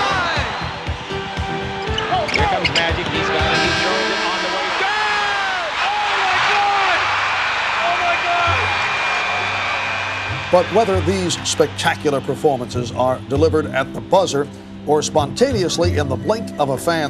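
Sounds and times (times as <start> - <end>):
basketball game audio: 0.0 - 11.8
music playing: 0.0 - 17.0.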